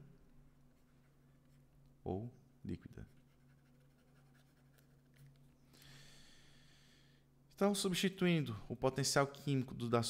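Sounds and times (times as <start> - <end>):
low steady hum: 0.0 - 10.0
stylus scratching on tablet: 3.0 - 5.4.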